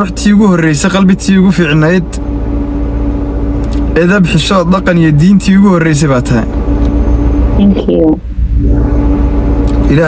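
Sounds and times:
car cabin low rumble: 0:00.0 - 0:10.0
steady hum: 0:00.0 - 0:10.0.

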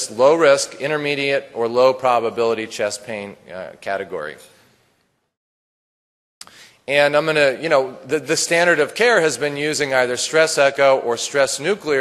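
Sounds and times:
man speaking: 0:00.0 - 0:04.6, 0:06.5 - 0:12.0.

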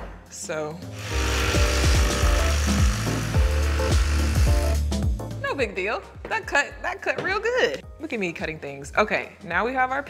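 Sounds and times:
jigsaw cutting plastic: 0:01.0 - 0:04.8.

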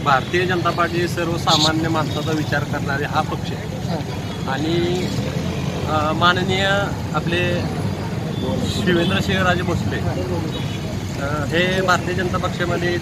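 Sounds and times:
man speaking into microphone: 0:00.0 - 0:13.0.

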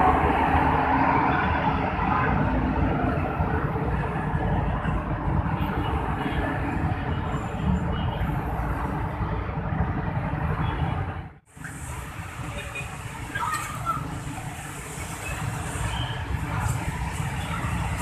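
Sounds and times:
city road traffic rumble: 0:00.0 - 0:18.0.

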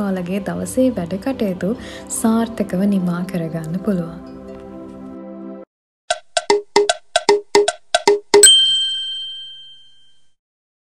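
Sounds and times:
ringing bell-like ding: 0:08.4 - 0:10.4.

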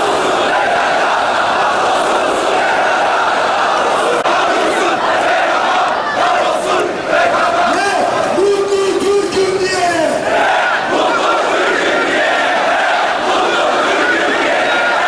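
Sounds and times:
crowd shouting and chanting: 0:00.0 - 0:15.0.

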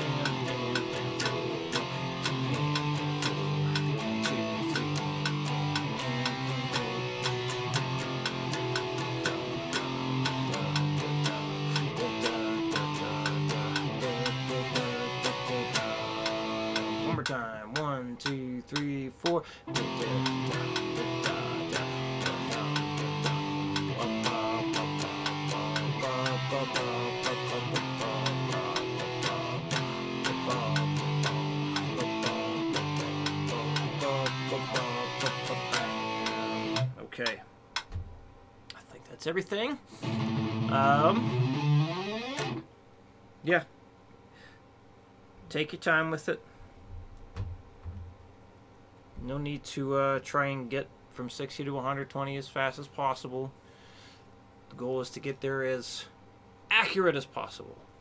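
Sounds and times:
guitar strings ringing and sliding: 0:00.0 - 0:17.4, 0:19.7 - 0:37.0, 0:40.0 - 0:42.6
electric guitar strumming power chords: 0:00.0 - 0:18.4, 0:19.7 - 0:37.4, 0:39.9 - 0:42.7.

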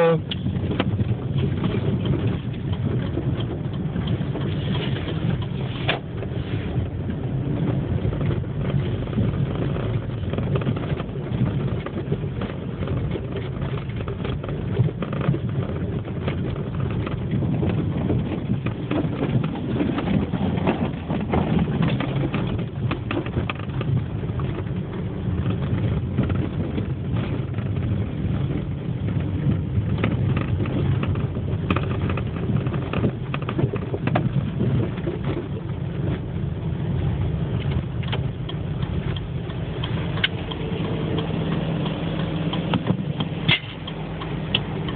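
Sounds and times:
car engine hum: 0:00.0 - 0:44.9
road noise: 0:00.0 - 0:44.9.

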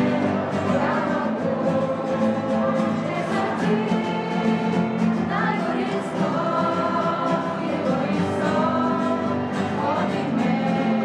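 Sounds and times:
children singing: 0:00.0 - 0:11.0
strummed acoustic guitars: 0:00.0 - 0:11.0.

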